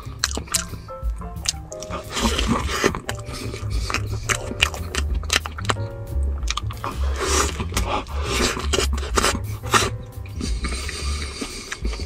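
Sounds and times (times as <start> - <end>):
wet chewing and smacking: 0.0 - 12.0.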